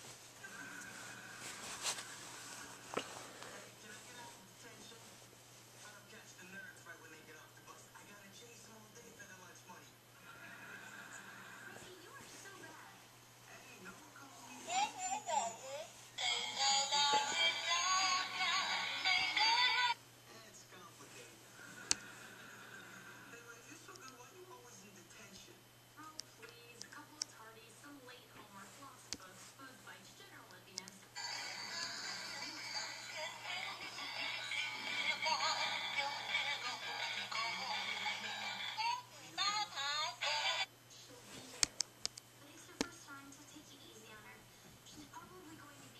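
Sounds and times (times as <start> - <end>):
toy electronic singing and music: 15.5 - 20.0, 31.2 - 40.6.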